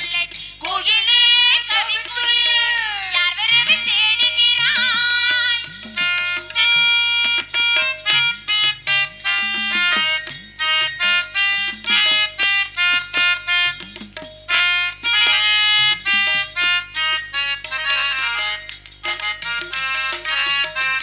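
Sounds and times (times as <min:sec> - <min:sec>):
fast ornamented melody: 0:00.6 - 0:21.0
tabla and bass drum strokes: 0:03.6 - 0:16.9.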